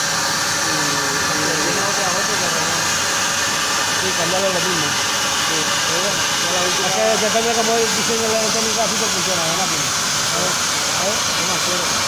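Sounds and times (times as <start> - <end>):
plasma torch cutting steel: 0.0 - 12.0.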